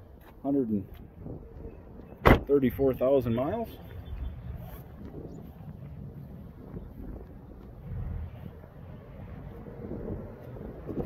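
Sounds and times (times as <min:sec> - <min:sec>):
wind buffeting microphone: 0:00.9 - 0:02.8, 0:03.5 - 0:11.0.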